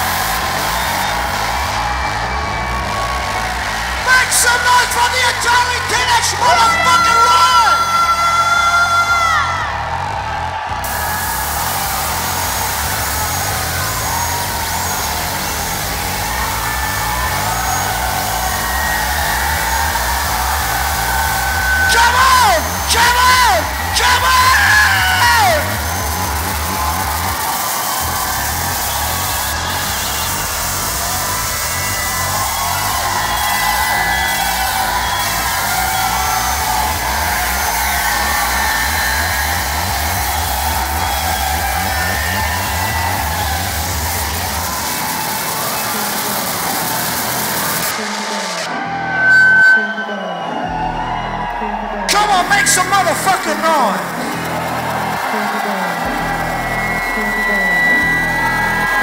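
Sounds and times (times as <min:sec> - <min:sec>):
pulsing bass beat: 0:00.0 - 0:49.2, 0:50.6 - 0:59.0
distorted noise: 0:00.0 - 0:50.1, 0:50.7 - 0:59.0
crowd yells: 0:00.0 - 0:59.0.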